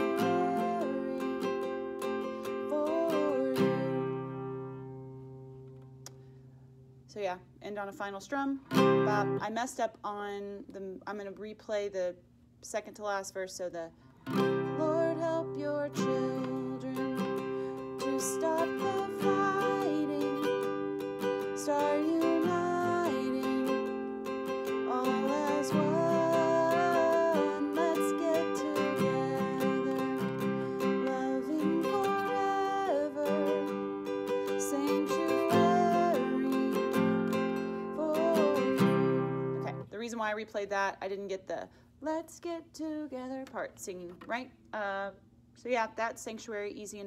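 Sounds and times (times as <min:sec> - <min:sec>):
woman singing: 0:00.0 - 0:04.4, 0:08.8 - 0:11.4, 0:14.4 - 0:40.4, 0:41.1 - 0:45.2
classical guitar strumming: 0:00.0 - 0:06.2, 0:08.6 - 0:09.5, 0:14.2 - 0:39.9.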